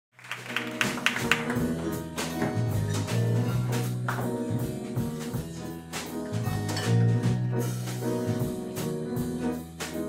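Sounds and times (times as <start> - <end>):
live band playing: 0.2 - 10.0.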